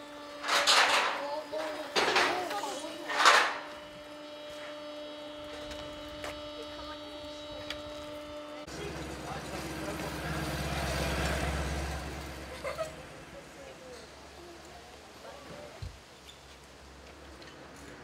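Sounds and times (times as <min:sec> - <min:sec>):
machine hum: 0:00.0 - 0:15.1
loud burst of noise: 0:01.9 - 0:04.7
low engine rumble: 0:05.3 - 0:18.0.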